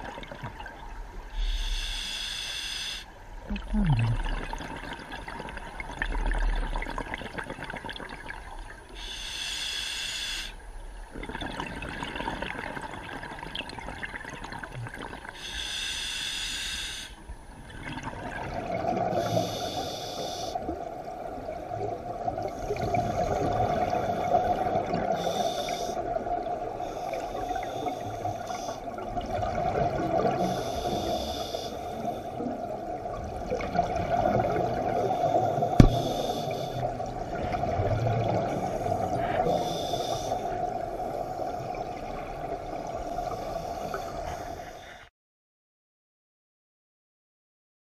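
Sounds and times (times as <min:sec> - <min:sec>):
scuba regulator breathing: 0:01.3 - 0:03.1, 0:09.0 - 0:10.6, 0:15.4 - 0:17.2, 0:19.2 - 0:20.6, 0:25.1 - 0:26.1, 0:26.8 - 0:28.9, 0:30.4 - 0:32.5, 0:35.0 - 0:37.0, 0:38.5 - 0:41.9, 0:43.1 - 0:45.1
exhaled bubbles bursting: 0:03.5 - 0:08.4
steady hum: 0:35.5 - 0:36.9.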